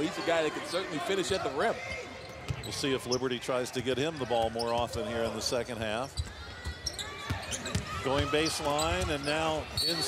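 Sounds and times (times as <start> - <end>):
faint crowd voices: 0.0 - 10.0.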